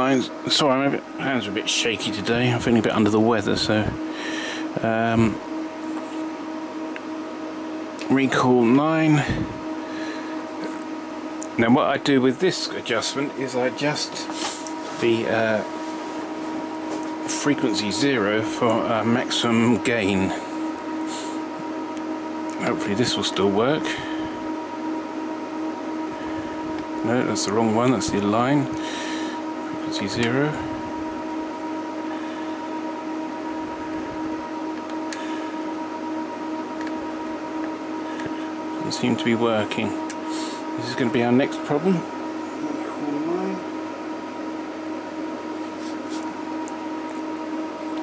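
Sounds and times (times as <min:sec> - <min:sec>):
cooling fans whirring: 0:00.0 - 0:48.0
steady machine hum: 0:00.0 - 0:48.0.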